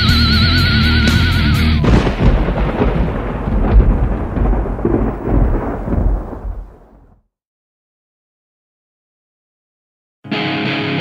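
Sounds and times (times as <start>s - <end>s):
rumbling distorted band noise: 0.0s - 7.1s.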